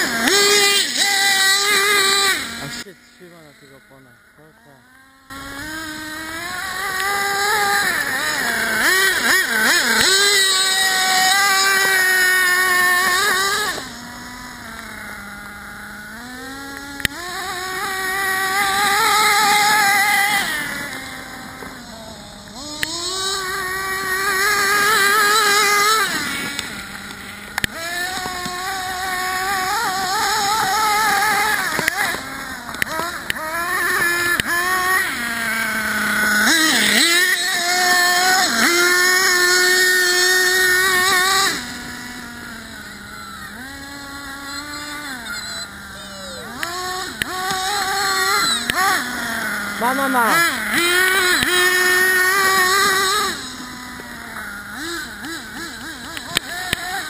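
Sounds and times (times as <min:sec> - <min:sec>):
small engine revving and idling: 0:00.0 - 0:57.0.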